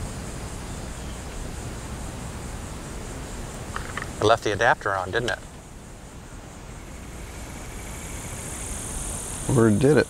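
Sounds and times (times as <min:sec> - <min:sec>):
engine low rumble: 0:00.0 - 0:10.0
insects buzzing: 0:00.0 - 0:10.0.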